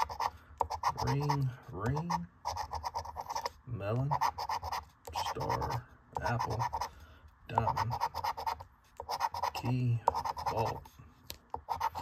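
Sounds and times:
coin scratching lottery ticket: 0.0s - 6.9s, 7.6s - 10.8s, 11.6s - 12.0s.

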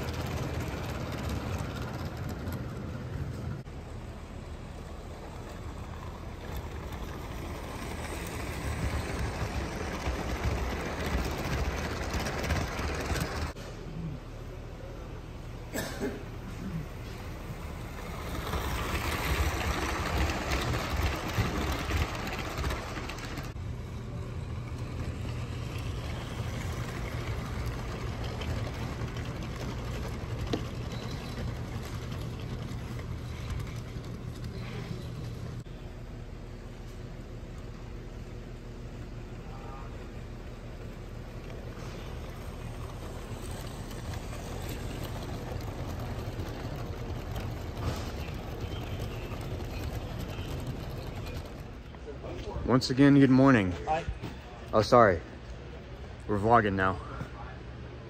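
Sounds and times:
toy train rolling on plastic track: 0.0s - 3.6s, 4.7s - 13.6s, 17.5s - 23.6s, 24.3s - 35.6s, 40.8s - 51.9s.

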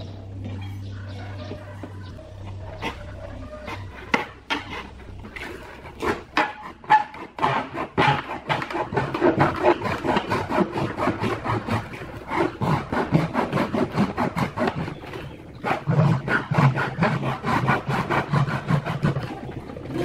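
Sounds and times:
knife sawing through plastic: 2.7s - 20.0s.

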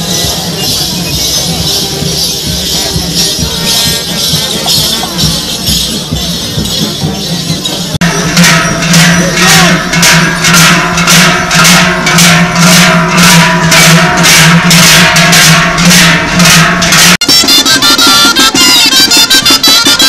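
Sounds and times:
large cowbells clanging rhythmically: 0.0s - 20.0s
lively band music with drum: 0.0s - 20.0s.

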